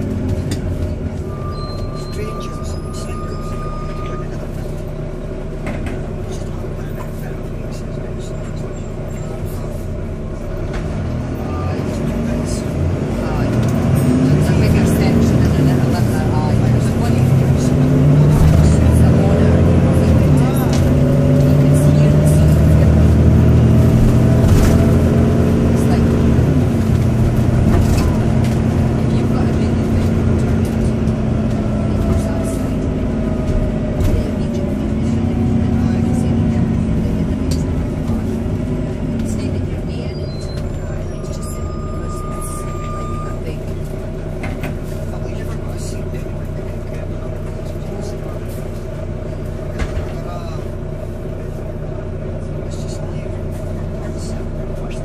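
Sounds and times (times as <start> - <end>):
bus diesel engine accelerating: 0.0 - 55.0.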